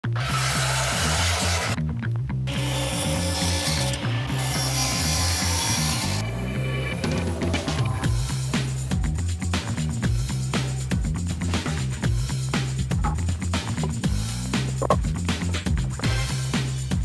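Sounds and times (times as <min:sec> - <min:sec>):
power saw cutting wood: 0:00.0 - 0:01.8, 0:02.5 - 0:07.9
background music with bass line: 0:00.0 - 0:17.0.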